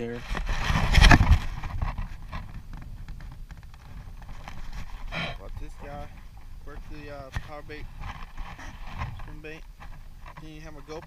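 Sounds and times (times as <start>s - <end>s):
wind rumbling on microphone: 0.0s - 11.0s
handling knocks and rustles: 0.1s - 11.0s.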